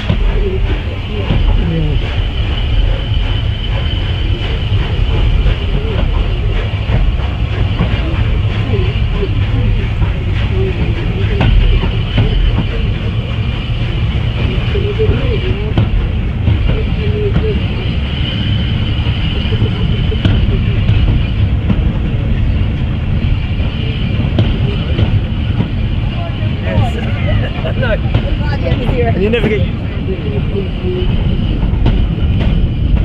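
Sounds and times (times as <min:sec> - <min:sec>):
people's voices: 0:00.0 - 0:33.0
steam train rumbling: 0:00.0 - 0:33.0.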